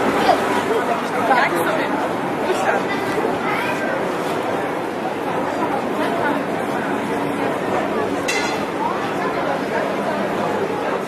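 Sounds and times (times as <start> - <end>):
crowd chatter in large hall: 0.0 - 11.0.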